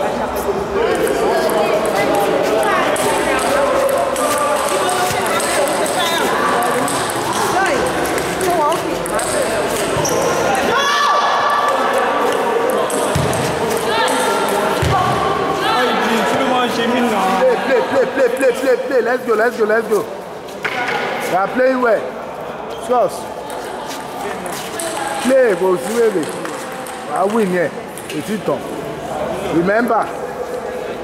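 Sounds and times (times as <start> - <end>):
voices talking: 0.0 - 31.0.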